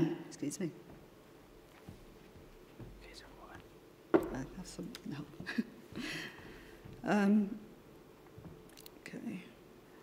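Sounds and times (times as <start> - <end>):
faint whispered voice: 3.0 - 3.7.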